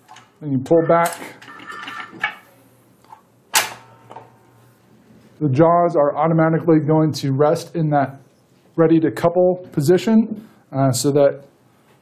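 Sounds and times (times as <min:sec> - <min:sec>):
hitch jaws clanking and rattling: 0:00.0 - 0:02.4
metallic ring: 0:00.7 - 0:02.4.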